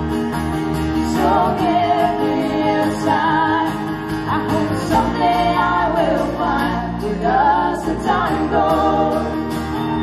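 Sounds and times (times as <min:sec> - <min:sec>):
acoustic guitars: 0:00.0 - 0:10.0
electric bass: 0:00.0 - 0:10.0
voices singing in harmony: 0:01.0 - 0:10.0.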